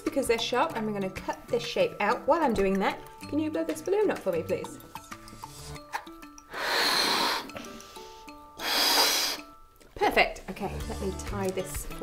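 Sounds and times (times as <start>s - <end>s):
child blowing up balloon: 6.4s - 9.6s.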